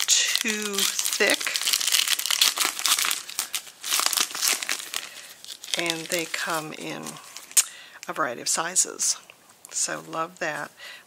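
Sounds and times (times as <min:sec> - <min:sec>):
plastic package crinkling: 0:00.0 - 0:07.7.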